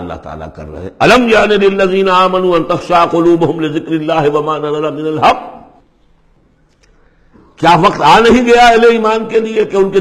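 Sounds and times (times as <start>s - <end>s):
man reciting: 0.0s - 5.8s, 7.6s - 10.0s.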